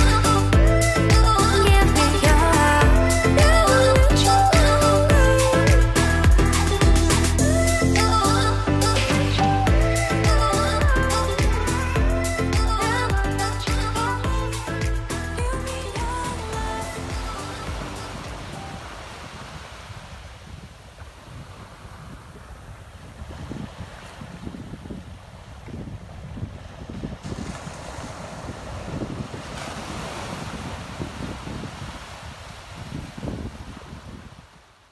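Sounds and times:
wind buffeting microphone: 16.0 - 34.8
small waves breaking on sand: 17.0 - 34.9.

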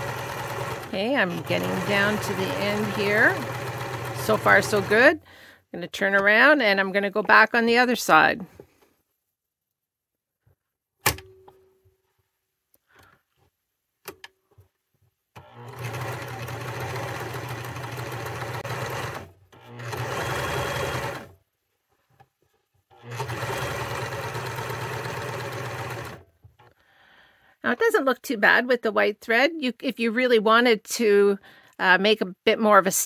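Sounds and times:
sewing machine stitching: 0.0 - 5.2, 15.4 - 21.4, 22.9 - 26.7.

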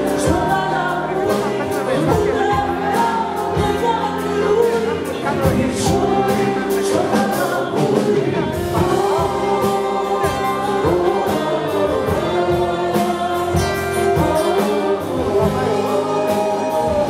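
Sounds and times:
electric bass: 0.0 - 17.0
people singing: 0.0 - 17.0.

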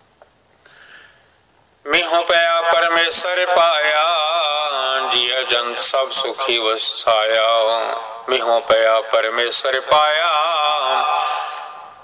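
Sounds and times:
soft intake of breath: 0.5 - 1.5
man chanting scripture: 1.9 - 11.9.

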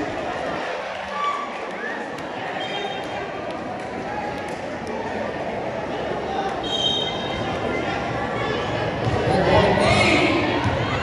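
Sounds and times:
crowd chattering in a gymnasium: 0.0 - 11.0.

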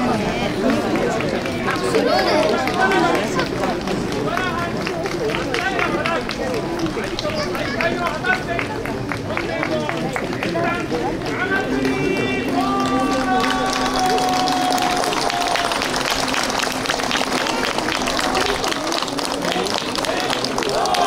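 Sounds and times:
overlapping voices of spectators: 0.0 - 21.0.

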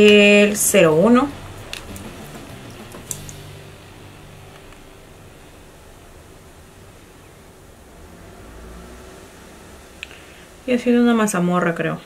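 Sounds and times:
fan-like room hum: 0.0 - 12.0.

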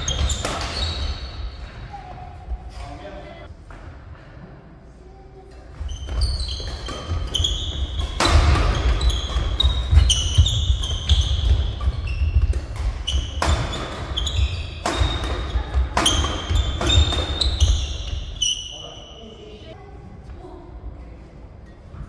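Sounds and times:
rackets hitting shuttlecock: 0.0 - 1.7, 6.0 - 18.4
sneakers squeaking on court: 0.0 - 2.9, 5.7 - 19.6.

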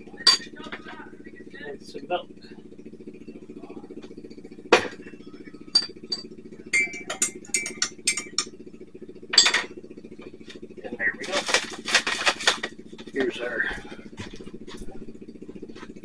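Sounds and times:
low hum: 0.0 - 16.0
spoon clinking in ceramic mug: 5.8 - 8.5.

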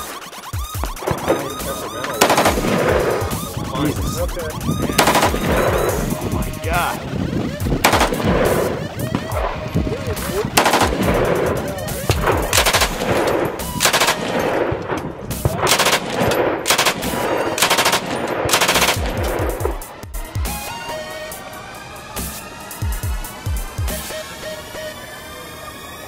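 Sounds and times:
rifle and machine gun fire: 1.0 - 3.9, 4.9 - 6.9, 7.8 - 9.6, 10.3 - 19.9.

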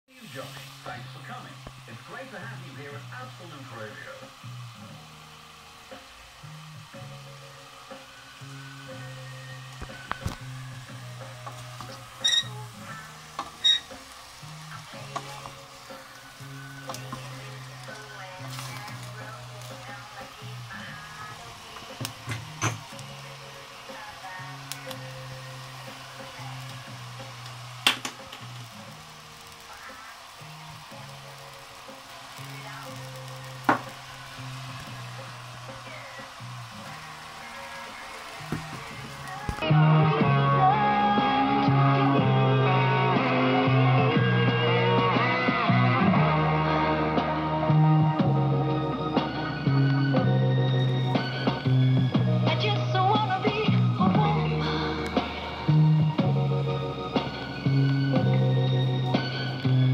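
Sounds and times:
background music: 0.0 - 59.9
food frying in a pot: 0.1 - 59.9.

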